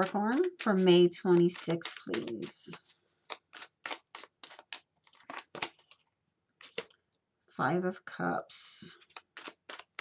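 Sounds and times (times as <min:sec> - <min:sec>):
hands shuffling cards: 0:00.0 - 0:07.0, 0:08.9 - 0:10.0.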